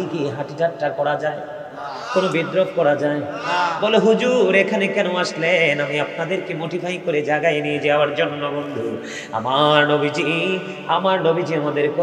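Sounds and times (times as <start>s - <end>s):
man chanting melodically: 1.9s - 5.4s.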